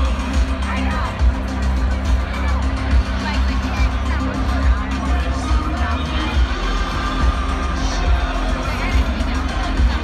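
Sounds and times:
loud rock music over pa system: 0.0s - 10.0s.

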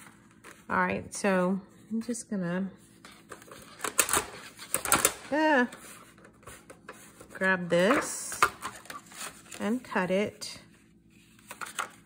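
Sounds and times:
paper rustling on countertop: 2.9s - 12.0s.

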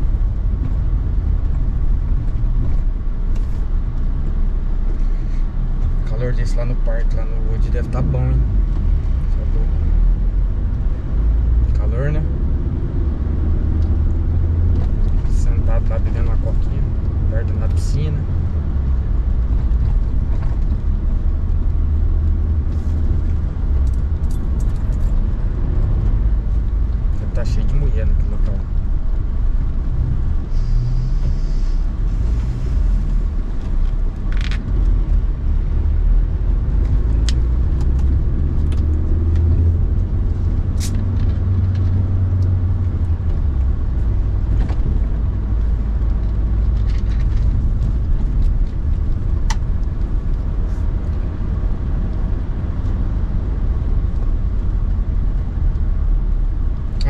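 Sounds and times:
car engine and tyres rumbling: 0.0s - 57.0s.

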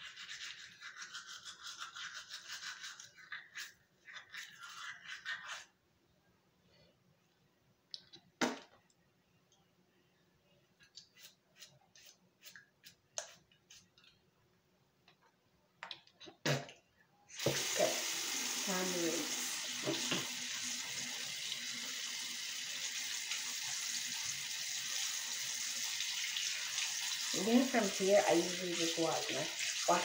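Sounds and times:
faucet running into sink: 17.4s - 30.0s.

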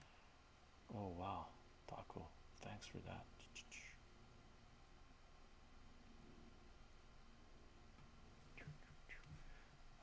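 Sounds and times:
man speaking softly: 0.9s - 4.0s, 8.5s - 9.6s
breathy whisper: 8.5s - 9.9s.

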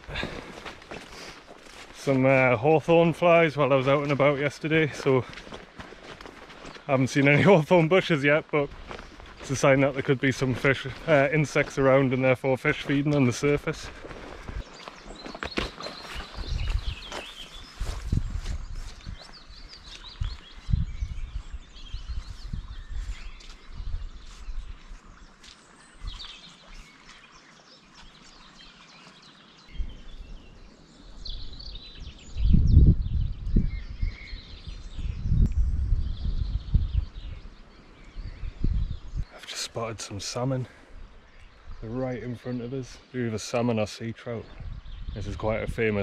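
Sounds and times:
birds chirping: 0.0s - 46.0s
wind gusting on microphone: 16.0s - 25.3s, 29.7s - 39.4s, 44.4s - 46.0s.

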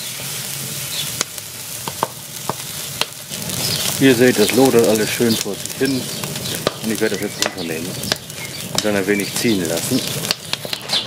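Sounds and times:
fire popping: 0.0s - 11.0s
steak sizzling on grill: 0.0s - 11.0s
wood fire crackling: 0.0s - 11.0s.

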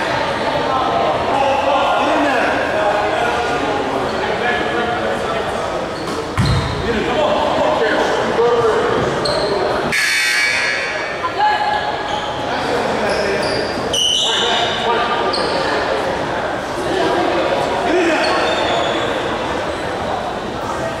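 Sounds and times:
indistinct echoing voices: 0.0s - 21.0s
sneaker squeaks: 5.9s - 6.9s, 9.2s - 10.9s, 12.0s - 15.8s, 18.2s - 19.3s.

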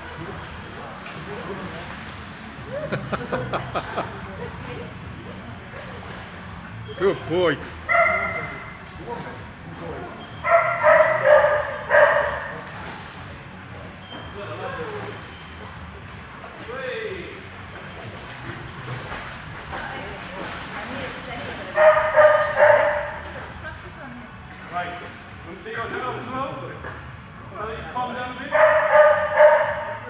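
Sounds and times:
dog barking: 7.9s - 8.7s, 10.4s - 12.6s, 21.8s - 23.2s, 28.5s - 30.0s.

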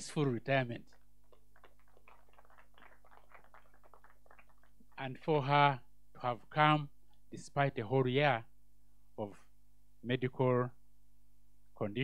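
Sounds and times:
distant audience applause: 0.9s - 5.0s.

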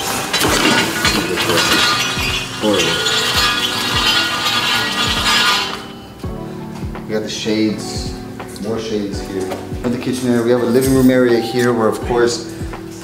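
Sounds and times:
window shade rattling: 0.0s - 6.1s
background music with beat: 3.3s - 13.0s.

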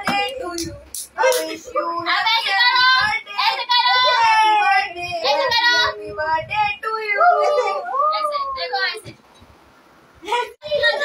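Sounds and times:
high child-like voice singing: 0.0s - 8.8s.

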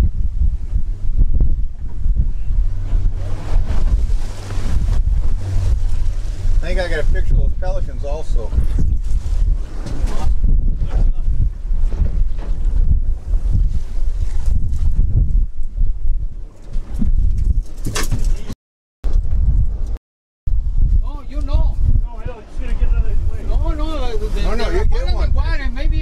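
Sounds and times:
outboard motor running: 0.0s - 14.7s
wind buffeting microphone: 0.0s - 26.0s.

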